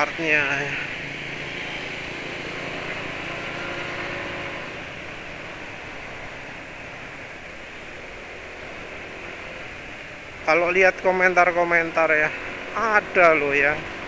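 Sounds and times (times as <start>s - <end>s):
scooter engine and road noise: 0.0s - 14.0s.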